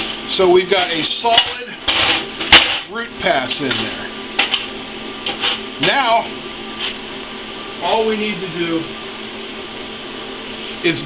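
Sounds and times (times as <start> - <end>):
fan-like whir with hiss: 0.0 - 11.0.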